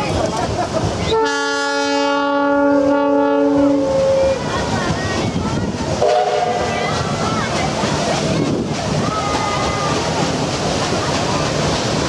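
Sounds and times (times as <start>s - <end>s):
water noise: 0.0s - 12.0s
wind: 0.0s - 12.0s.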